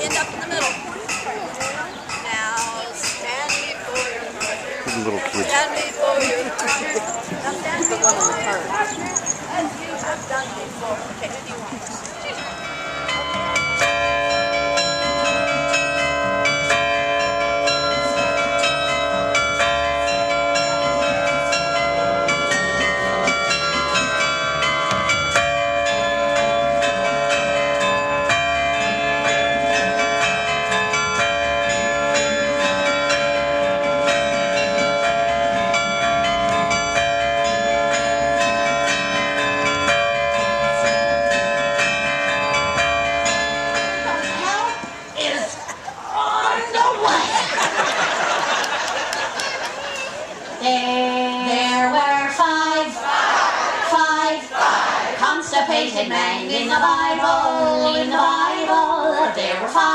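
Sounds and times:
carillon bells playing melody: 0.0s - 10.4s, 12.1s - 45.5s, 47.4s - 49.4s.

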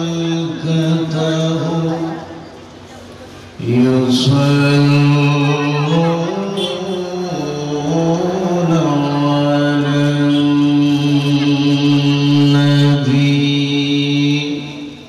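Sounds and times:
man chanting into a microphone: 0.0s - 2.3s, 3.6s - 15.0s.

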